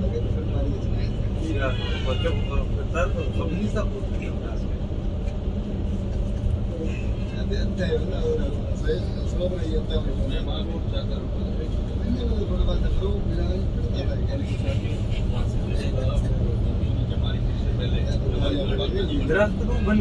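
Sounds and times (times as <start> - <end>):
coach engine and road drone: 0.0 - 20.0
faint voices talking: 0.0 - 20.0.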